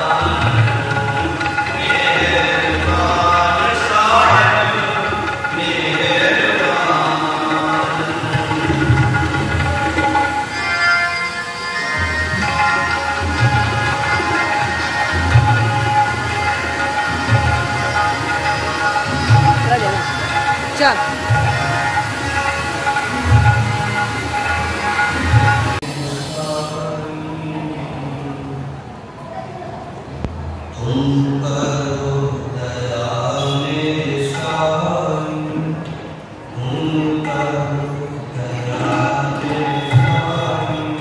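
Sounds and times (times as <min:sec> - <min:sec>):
devotional chanting: 0:00.0 - 0:10.6, 0:12.2 - 0:28.9, 0:30.7 - 0:41.0.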